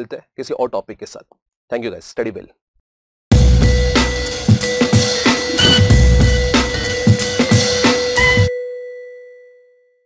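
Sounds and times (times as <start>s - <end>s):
jingle beat: 5.1s - 8.5s
bell-like chime ringing: 5.4s - 10.0s.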